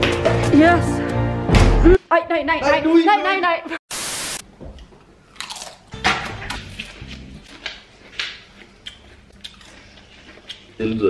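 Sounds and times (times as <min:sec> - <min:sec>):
static noise burst: 0:03.9 - 0:04.4
potato chips crunching: 0:05.3 - 0:10.7.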